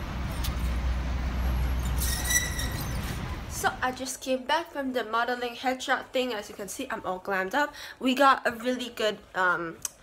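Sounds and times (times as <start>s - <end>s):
road noise hiss: 0.0s - 3.9s
traffic rumble: 0.0s - 7.3s.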